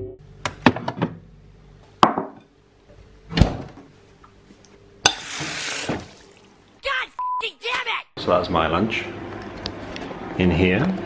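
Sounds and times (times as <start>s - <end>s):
water hissing onto noodles: 5.2s - 6.5s.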